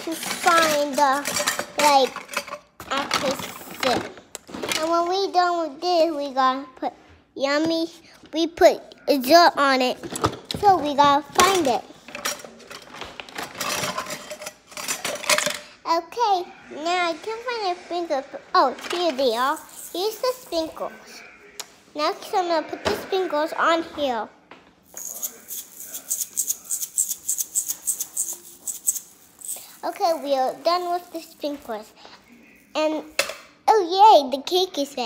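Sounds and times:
toys rustling and clattering: 0:00.0 - 0:05.4, 0:09.8 - 0:15.8, 0:17.7 - 0:21.0, 0:24.8 - 0:33.6
sprinkles shaker rattling: 0:19.4 - 0:20.6, 0:24.9 - 0:31.8.

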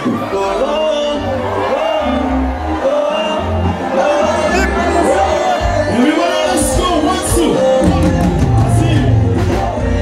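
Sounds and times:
bass guitar: 0:00.0 - 0:10.0
live band music: 0:00.0 - 0:10.0
man singing: 0:00.0 - 0:10.0.

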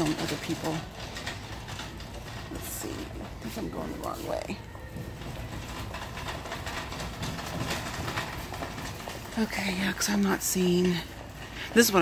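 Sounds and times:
metal basket rattling: 0:00.0 - 0:12.0
shopping cart wheels rolling: 0:00.0 - 0:12.0.

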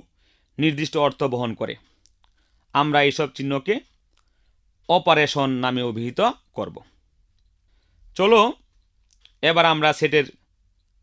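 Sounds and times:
person speaking: 0:00.6 - 0:03.9, 0:04.8 - 0:07.0, 0:08.1 - 0:10.4.

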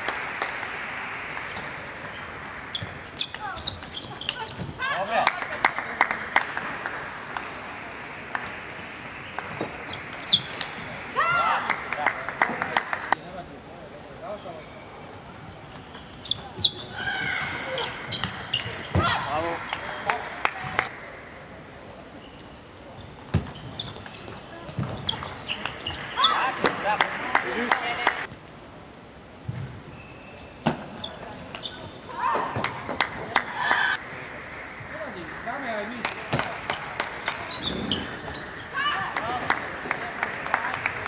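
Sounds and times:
voices and shouts: 0:11.0 - 0:12.1.

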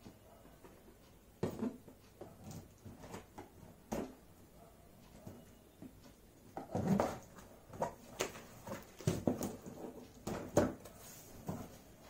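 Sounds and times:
cardboard knocking and scraping: 0:06.6 - 0:11.8.

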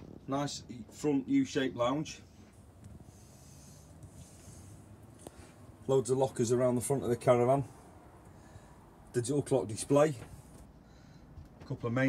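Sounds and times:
soft hiss: 0:00.3 - 0:06.1.

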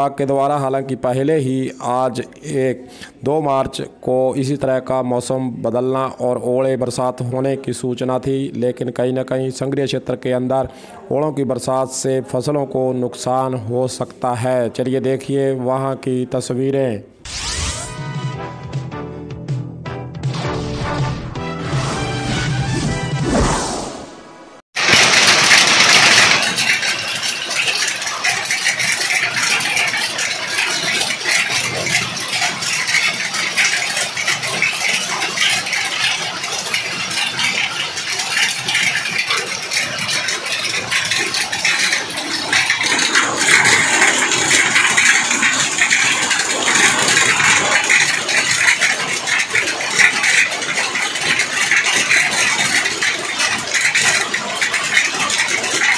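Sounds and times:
hail falling on pavement: 0:24.8 - 0:55.9.

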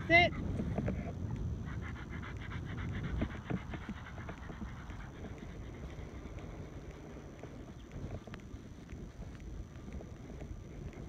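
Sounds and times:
dog panting: 0:00.1 - 0:11.0.

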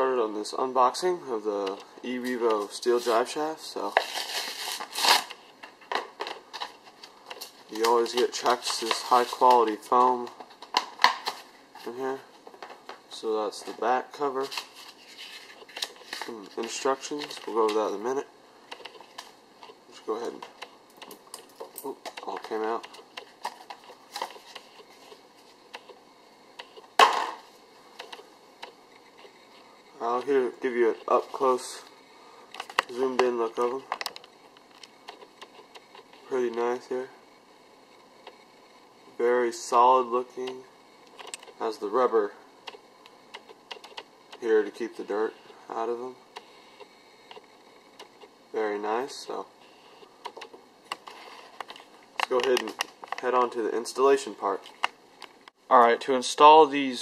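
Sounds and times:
plastic packaging crinkling: 0:02.6 - 0:11.5.

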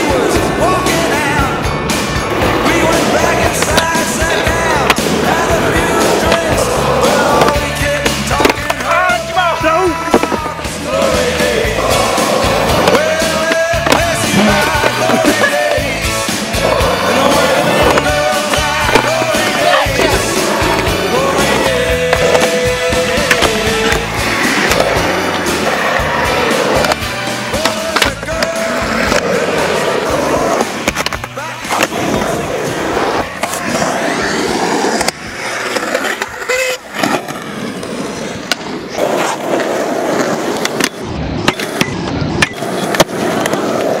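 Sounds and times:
background music: 0:00.0 - 0:36.2
skateboard wheels rolling: 0:00.0 - 0:44.0
skateboard clacks: 0:00.1 - 0:44.0.

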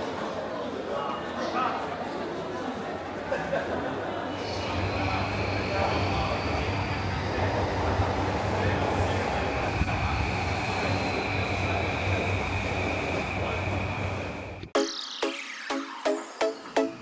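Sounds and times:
train high whine: 0:04.2 - 0:17.0
train wheels rumbling: 0:04.4 - 0:14.7.

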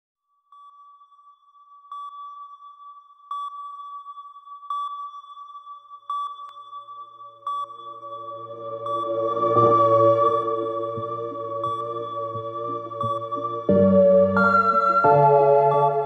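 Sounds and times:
steady high synth tone: 0:07.3 - 0:16.0
low synth drone: 0:07.4 - 0:16.0.

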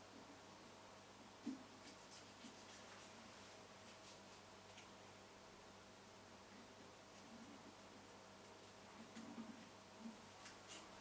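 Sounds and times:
knife scratching pumpkin rind: 0:01.8 - 0:03.2.

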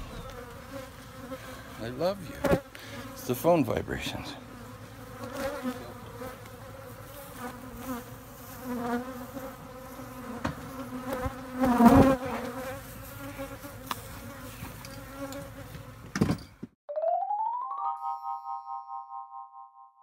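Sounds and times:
bee flying past close: 0:00.0 - 0:01.7, 0:04.5 - 0:15.7
bees buzzing: 0:00.0 - 0:16.0.

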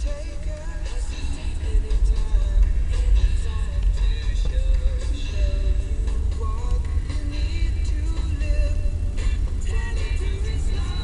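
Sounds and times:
car engine and tyres rumbling: 0:00.0 - 0:11.0
song on car radio: 0:00.0 - 0:11.0.

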